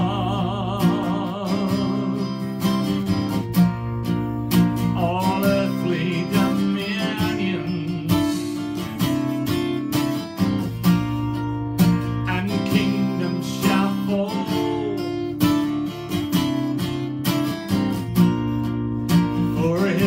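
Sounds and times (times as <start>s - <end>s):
acoustic guitar strumming chords: 0.0s - 20.0s.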